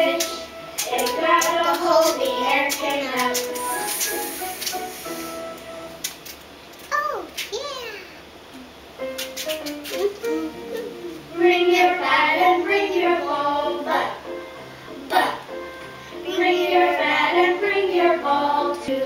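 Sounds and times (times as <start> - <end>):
young child singing: 0.0 - 3.7, 16.2 - 19.0.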